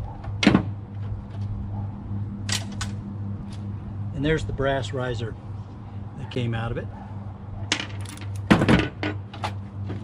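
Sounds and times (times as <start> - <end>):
metal parts clinking: 7.7 - 9.2.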